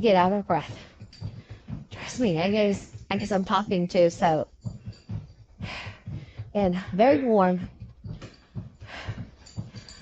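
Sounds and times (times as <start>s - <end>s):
stepper pedals thudding: 0.0s - 10.0s
woman breathing hard: 0.7s - 2.2s, 5.1s - 7.0s, 8.1s - 10.0s.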